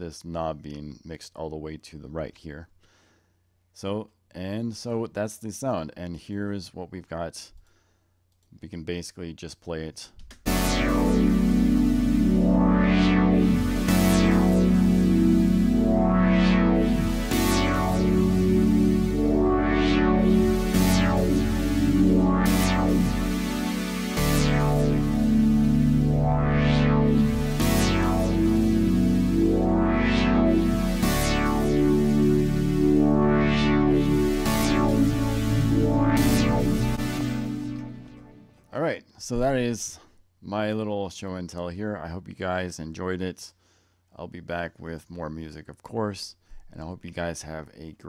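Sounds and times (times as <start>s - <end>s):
synthesizer pads holding a chord: 10.5s - 38.7s.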